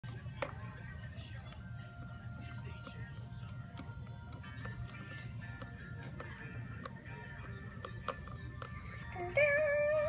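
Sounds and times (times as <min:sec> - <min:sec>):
recorded song playing: 0:00.0 - 0:10.0.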